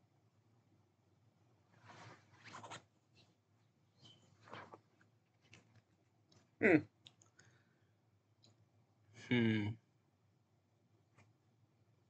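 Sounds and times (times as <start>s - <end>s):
rustling and scraping of hands: 1.7s - 3.4s, 4.0s - 6.0s.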